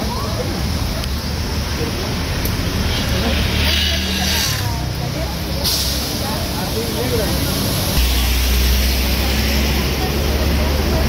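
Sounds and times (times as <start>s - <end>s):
background voices: 0.0s - 11.0s
low rumble of vehicles: 0.0s - 11.0s
hiss: 5.5s - 9.8s.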